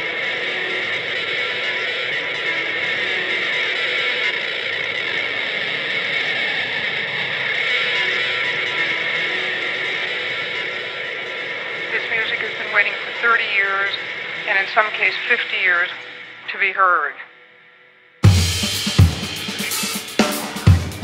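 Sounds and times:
electric guitars playing rock: 0:00.0 - 0:14.5, 0:18.2 - 0:21.0.

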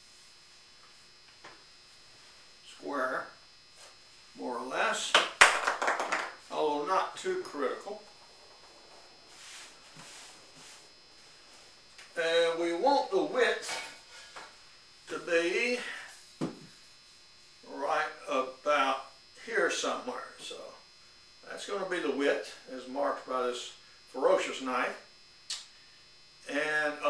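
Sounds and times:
man speaking: 0:02.7 - 0:03.3, 0:04.4 - 0:05.2, 0:06.5 - 0:08.1, 0:12.1 - 0:14.0, 0:15.1 - 0:16.2, 0:17.7 - 0:20.8
cloth rustling: 0:08.1 - 0:12.0.

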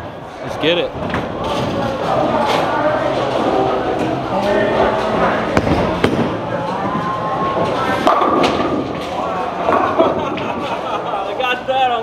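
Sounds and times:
background chatter: 0:00.0 - 0:12.0
bowling balls thudding on lanes: 0:01.0 - 0:10.8.

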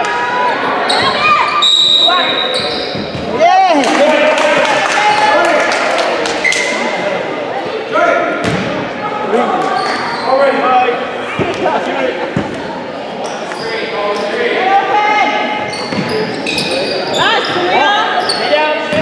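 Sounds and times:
voices of players and spectators: 0:00.0 - 0:19.0.

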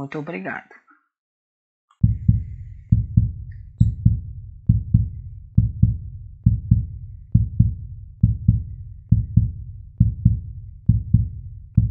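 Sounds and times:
heartbeat thumps: 0:02.0 - 0:11.9.

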